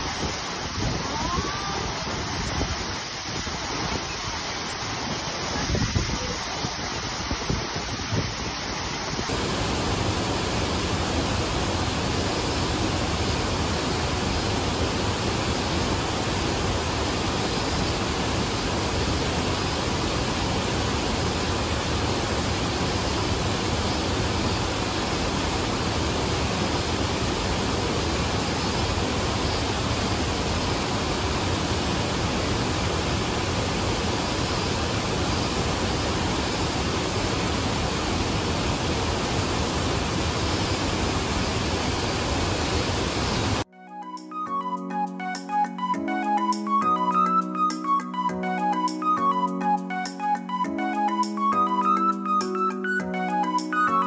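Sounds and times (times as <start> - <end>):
waterfall rushing: 0.0 - 43.7.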